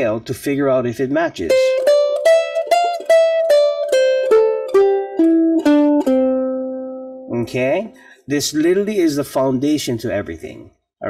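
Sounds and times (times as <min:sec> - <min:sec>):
ukulele plucked descending scale: 0:01.5 - 0:08.0.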